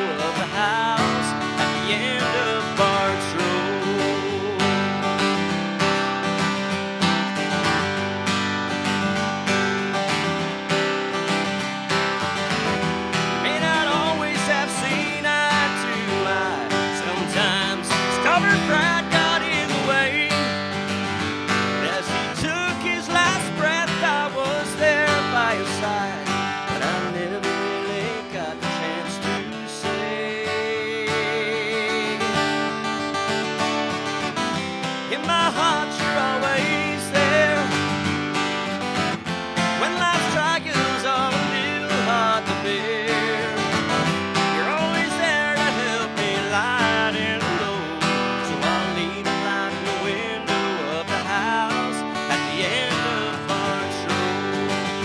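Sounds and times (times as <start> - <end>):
acoustic guitar strumming: 0.0 - 55.0
man singing with vibrato: 0.0 - 55.0.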